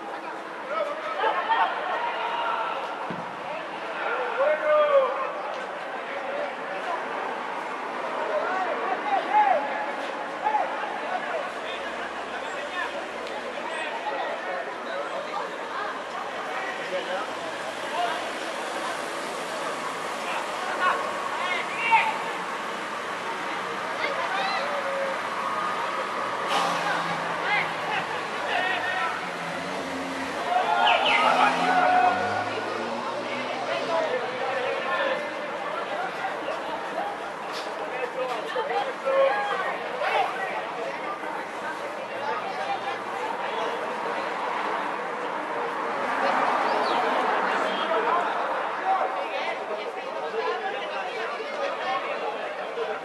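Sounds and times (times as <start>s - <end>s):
voices talking and calling out: 0.0s - 53.0s
distant players shouting: 26.4s - 34.8s.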